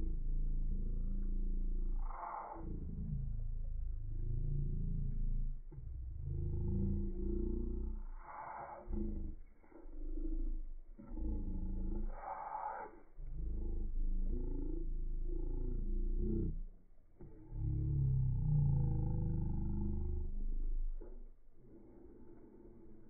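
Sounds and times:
deep drawn-out groaning: 0.0 - 23.0.

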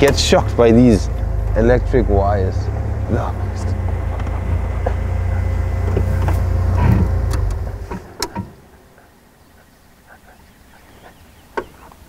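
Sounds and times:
outdoor ambience: 0.0 - 12.0
vehicle engine rumble: 0.0 - 12.0.

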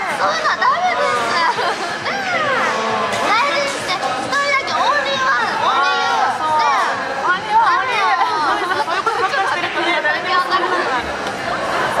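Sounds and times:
young women laughing and chattering: 0.0 - 12.0.

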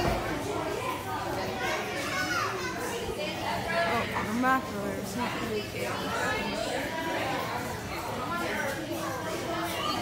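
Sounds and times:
chatter of children and people: 0.0 - 10.0.

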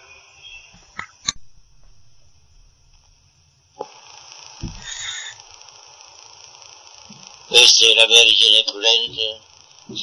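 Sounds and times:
recording hiss: 0.0 - 10.0
soft low thump: 0.8 - 3.3, 4.6 - 4.9.

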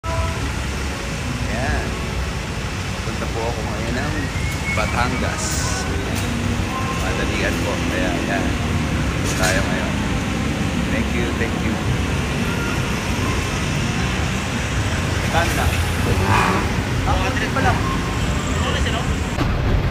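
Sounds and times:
road traffic rumble: 0.0 - 19.9
rising and falling voice: 15.4 - 18.0.

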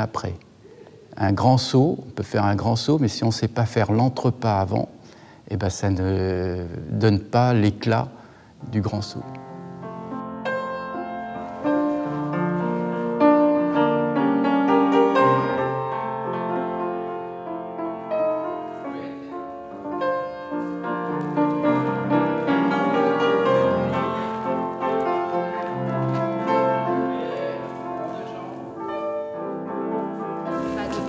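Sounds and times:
grand piano playing: 8.6 - 31.0.

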